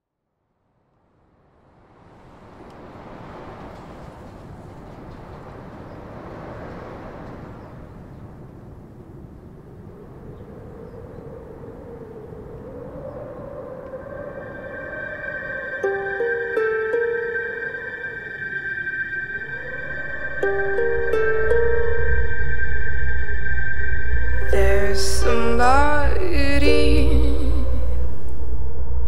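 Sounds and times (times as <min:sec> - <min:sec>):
faint wavering tone: 0:12.7 - 0:29.0
steady rushing rumble: 0:13.2 - 0:29.0.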